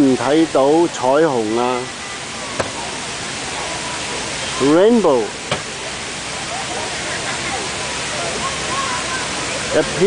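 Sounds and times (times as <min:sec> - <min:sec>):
faint distant voices: 0:00.0 - 0:10.0
fountain water splashing: 0:00.0 - 0:10.0.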